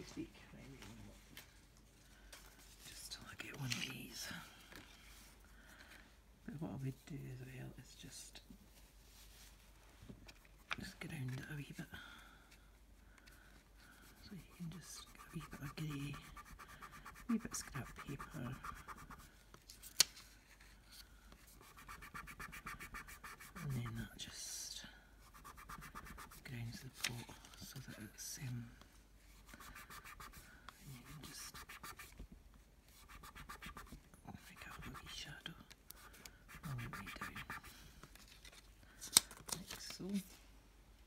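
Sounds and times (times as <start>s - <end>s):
tissue rubbing on card: 13.8s - 19.4s, 21.4s - 24.0s, 25.2s - 27.0s, 29.2s - 32.2s, 32.9s - 35.2s, 36.0s - 38.6s.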